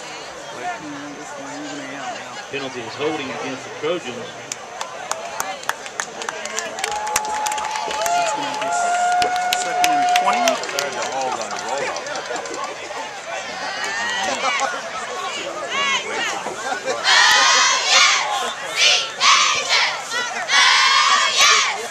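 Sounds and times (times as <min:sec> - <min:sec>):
crowd clapping: 0:04.4 - 0:14.3
crowd shouting: 0:06.8 - 0:21.9.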